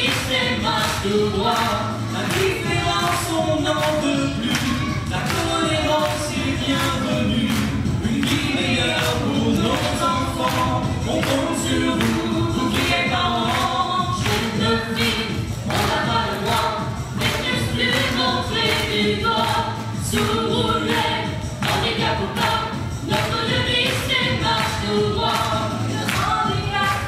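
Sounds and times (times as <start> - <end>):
accompaniment with steady beat: 0.0 - 27.0
group of voices singing: 0.0 - 27.0.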